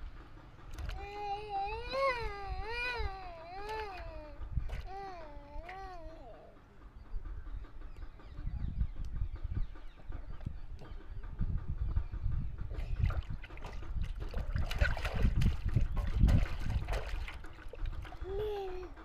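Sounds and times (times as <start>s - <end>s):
water splashing in a plastic tub: 0.6s - 1.2s, 3.5s - 5.9s, 12.7s - 18.6s.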